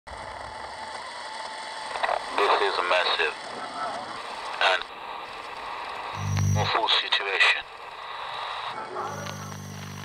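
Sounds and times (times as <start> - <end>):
static hiss: 0.1 - 10.0.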